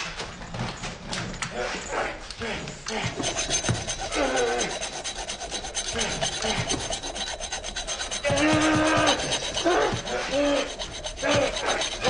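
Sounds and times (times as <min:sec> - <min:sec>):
hacksaw rasping: 0:02.9 - 0:12.0.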